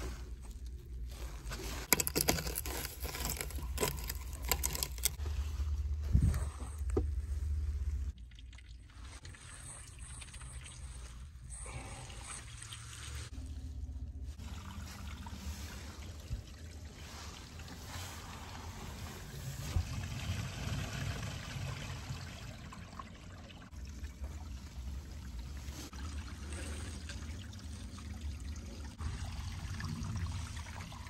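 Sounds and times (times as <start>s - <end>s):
water trickling through drain pipe: 1.8s - 5.2s, 8.0s - 31.0s.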